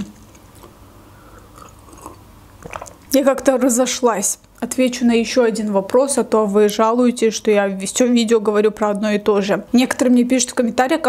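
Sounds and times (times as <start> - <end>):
sipping and swallowing water: 0.6 - 3.5.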